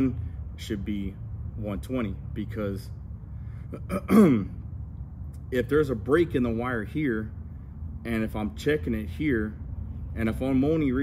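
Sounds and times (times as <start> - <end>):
man clearing his throat: 3.7 - 4.6.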